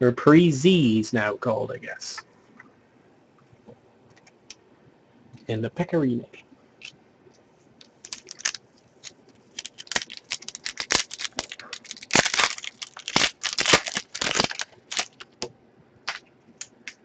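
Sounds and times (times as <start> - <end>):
wrapper crinkling and tearing: 7.8 - 15.5, 16.1 - 17.0.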